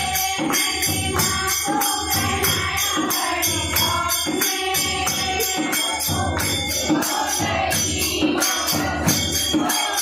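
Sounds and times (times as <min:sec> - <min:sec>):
rhythmic hand-clapping: 0:00.0 - 0:10.0
women singing together: 0:00.0 - 0:10.0.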